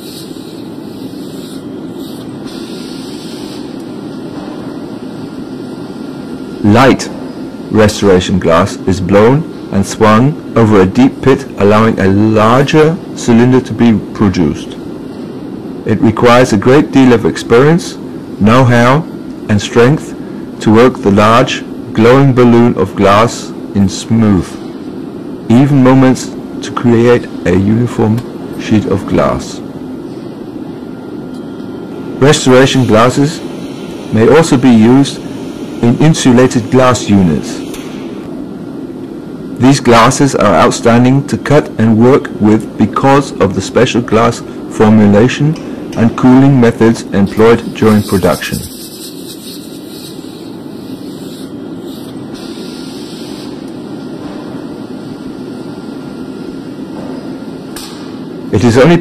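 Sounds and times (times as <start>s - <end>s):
low roar of machinery: 0.0s - 59.0s.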